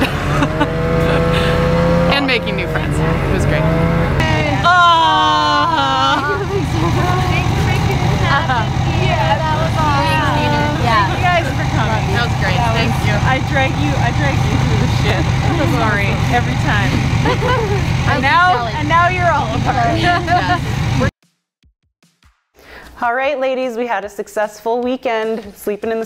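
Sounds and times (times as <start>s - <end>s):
vehicle engine idling: 0.0s - 21.1s
women chatting and laughing: 0.0s - 21.1s.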